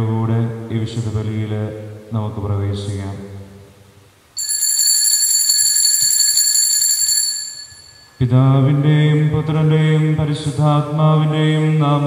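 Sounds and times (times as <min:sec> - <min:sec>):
bell ringing rapidly: 0:04.4 - 0:08.3.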